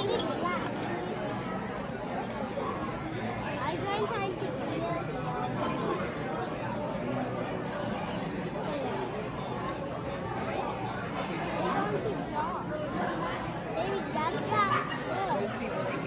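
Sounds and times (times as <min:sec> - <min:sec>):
chatter of many voices: 0:00.0 - 0:16.0
child's voice: 0:13.8 - 0:15.4.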